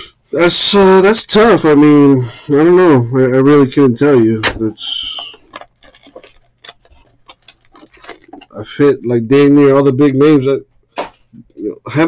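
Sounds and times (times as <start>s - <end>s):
foil packs rustling and crinkling: 4.8s - 8.8s.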